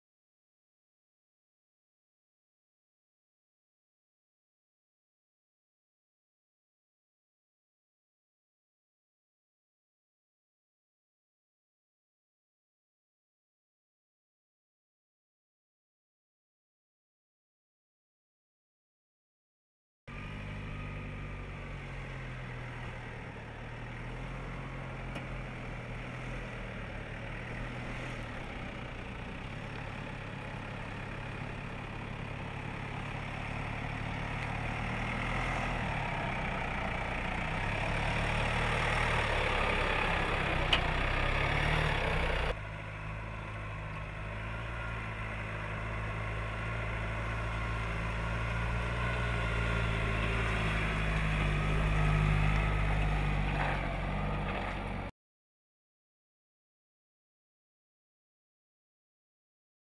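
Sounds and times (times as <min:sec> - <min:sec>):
off-road vehicle engine running: 0:20.1 - 0:55.1.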